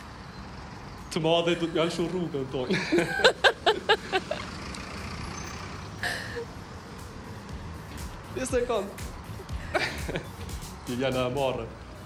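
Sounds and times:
city traffic noise: 0.0s - 12.0s.

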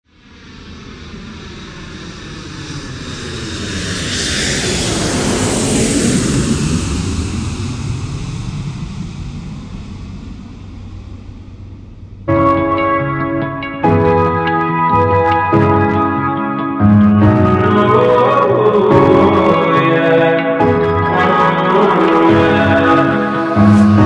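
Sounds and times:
jet airliner engine roar: 0.1s - 24.0s.

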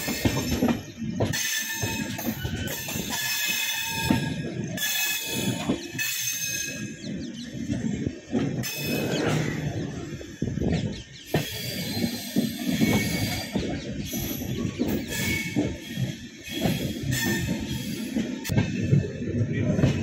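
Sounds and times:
train wheels rumbling over track: 0.0s - 20.0s.

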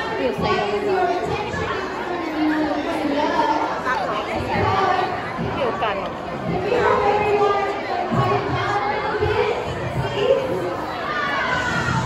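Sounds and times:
indistinct background chatter: 0.0s - 12.0s.

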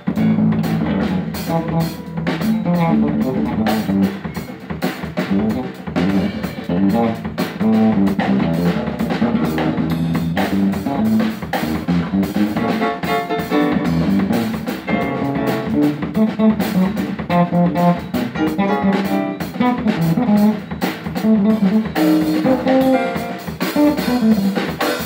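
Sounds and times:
guitar lines: 0.0s - 4.6s
live jazz band: 0.0s - 25.0s.

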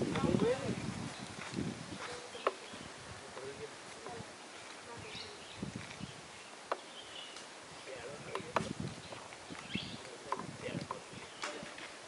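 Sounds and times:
people talking: 3.3s - 5.4s, 7.9s - 8.7s, 9.9s - 11.9s.

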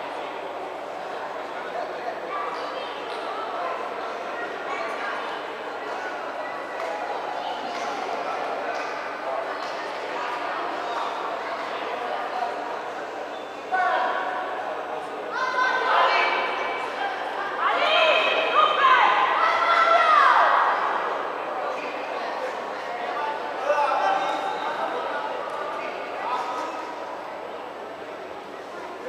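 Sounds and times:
voices shouting in echoing hall: 2.0s - 29.0s.

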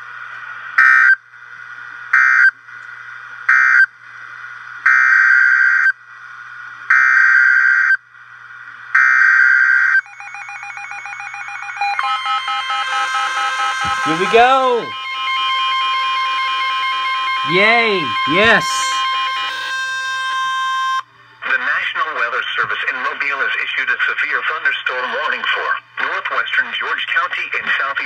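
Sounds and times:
electronic alert tones: 11.9s - 19.4s
harsh digital screeches: 12.0s - 20.8s.

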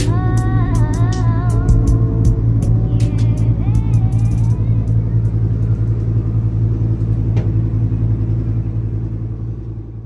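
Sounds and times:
music with singing: 0.0s - 6.2s
loud steady low hum: 0.0s - 10.0s.

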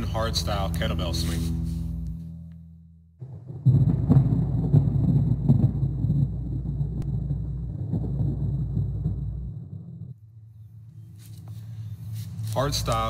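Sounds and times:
rolling thunder rumble: 3.2s - 10.2s.

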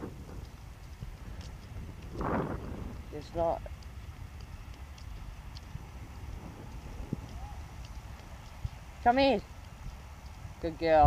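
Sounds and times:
microphone handling noise: 0.0s - 3.0s
footsteps on sand: 0.0s - 10.9s
wind rumble on microphone: 0.0s - 11.0s.

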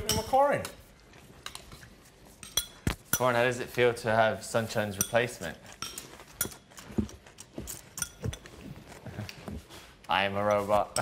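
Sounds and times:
spoon clinking against ceramic bowl: 0.0s - 0.8s, 2.4s - 3.4s, 4.9s - 6.8s, 7.7s - 8.6s.

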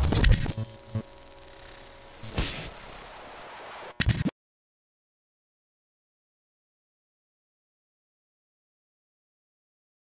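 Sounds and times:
electronic glitch clicks: 0.0s - 4.3s.

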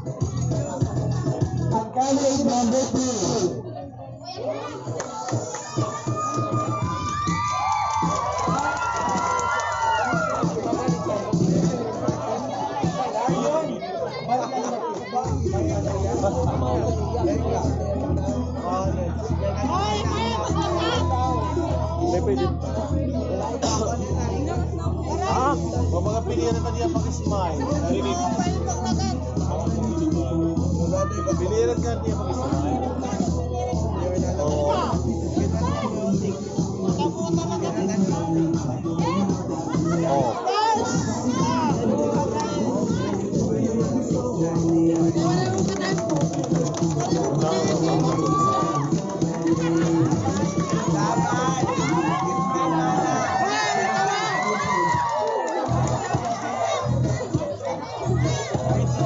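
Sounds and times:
people talking: 0.0s - 5.4s, 10.4s - 59.0s
music over loudspeaker: 0.0s - 14.3s, 14.9s - 59.0s
onlookers' voices: 0.0s - 59.0s
children shouting: 4.3s - 11.3s, 47.0s - 59.0s.

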